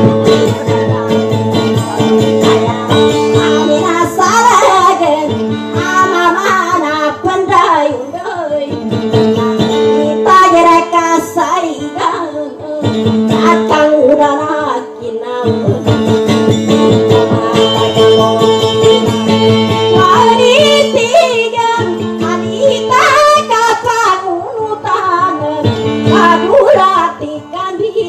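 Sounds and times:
acoustic guitar: 0:00.0 - 0:28.0
woman singing: 0:00.0 - 0:28.0.

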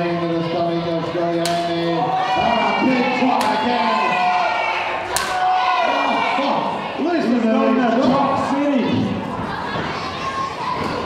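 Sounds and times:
crowd shouting: 0:01.7 - 0:11.0.

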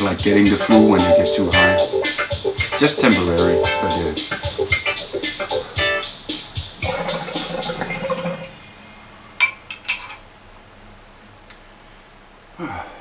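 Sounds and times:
water bubbling in a bong: 0:06.8 - 0:08.6.

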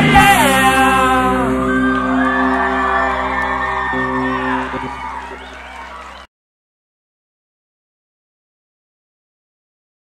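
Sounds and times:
rock band chord ringing: 0:00.0 - 0:06.1
crowd cheering and whooping: 0:00.5 - 0:06.3.

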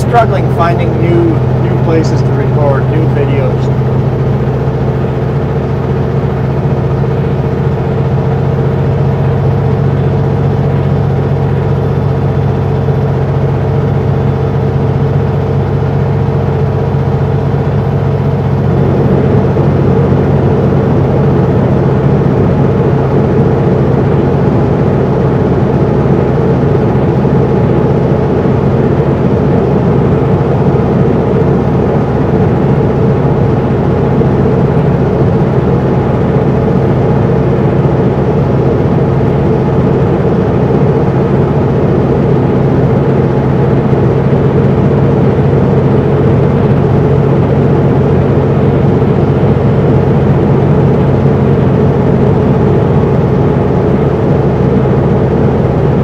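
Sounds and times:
diesel truck engine running: 0:00.0 - 0:56.0.

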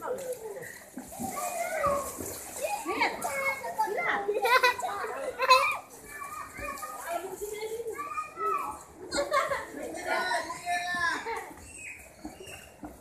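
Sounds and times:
children shouting and chattering: 0:00.0 - 0:13.0.

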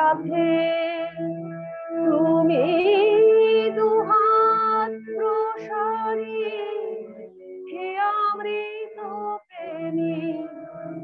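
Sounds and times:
woman singing devotional song: 0:00.0 - 0:01.3, 0:01.9 - 0:11.0.

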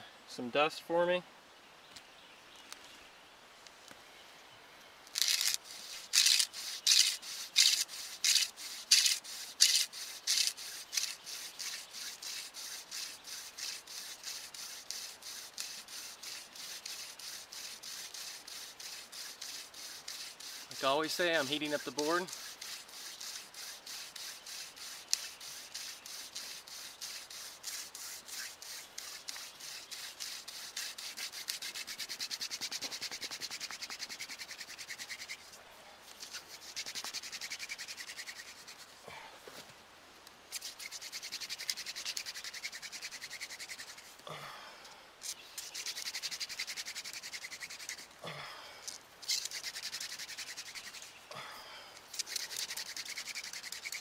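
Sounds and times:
wooden spindle rasping on board: 0:05.2 - 0:35.5, 0:36.2 - 0:38.9, 0:45.6 - 0:48.1, 0:52.2 - 0:54.0.

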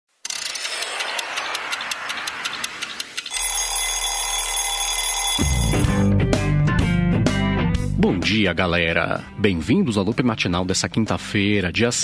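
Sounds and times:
alarm clock bell ringing: 0:03.3 - 0:06.1
guitar music: 0:05.4 - 0:08.3.

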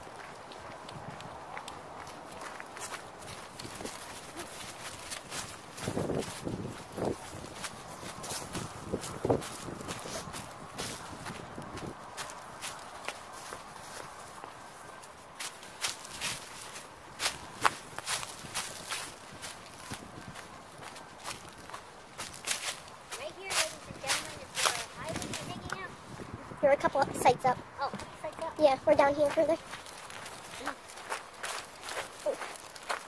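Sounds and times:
footsteps crunching through dry leaves: 0:00.0 - 0:26.2, 0:29.2 - 0:33.0.

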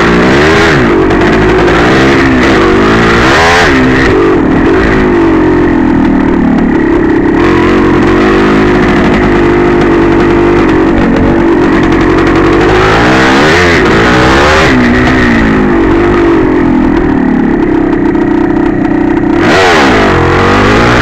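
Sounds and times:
two-stroke engine revving: 0:00.0 - 0:21.0.

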